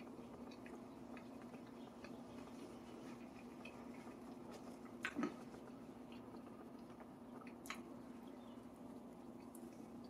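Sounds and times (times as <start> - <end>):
man chewing with dentures: 0.0 - 10.0.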